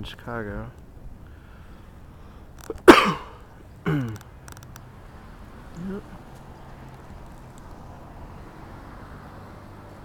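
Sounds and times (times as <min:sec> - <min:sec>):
person coughing: 0:02.7 - 0:04.2.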